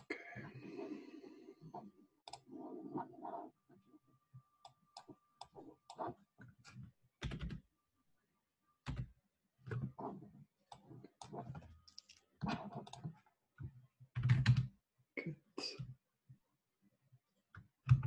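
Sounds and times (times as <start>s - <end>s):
mouse and keyboard clicks: 2.3s - 2.5s.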